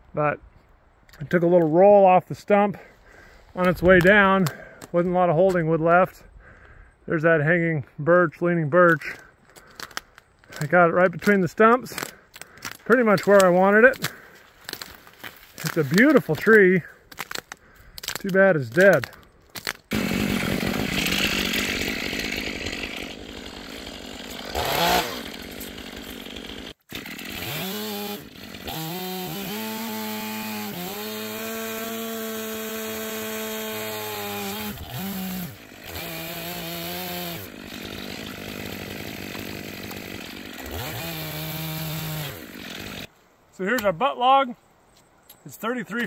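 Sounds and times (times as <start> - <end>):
chainsaw revving: 19.9 - 43.1.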